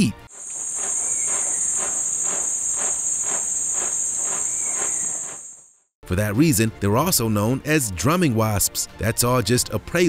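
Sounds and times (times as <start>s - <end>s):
wasps drumming on nest: 0.3s - 5.6s
high-pitched whine: 0.4s - 5.6s.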